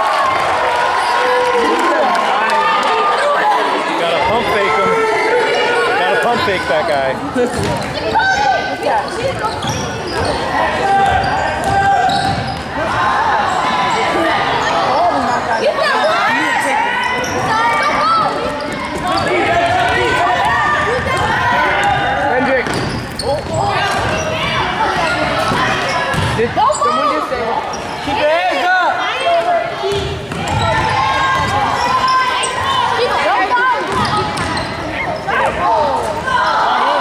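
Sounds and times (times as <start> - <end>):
indistinct shouting and chatter: 0.0 - 37.0.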